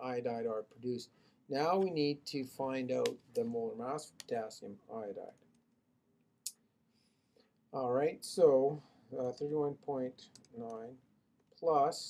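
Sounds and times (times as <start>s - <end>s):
man speaking: 0.0s - 5.4s, 7.8s - 11.0s, 11.6s - 12.0s.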